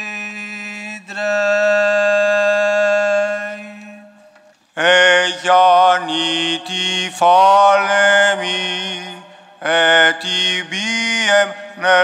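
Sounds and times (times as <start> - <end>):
liturgical chanting: 0.0 - 12.0.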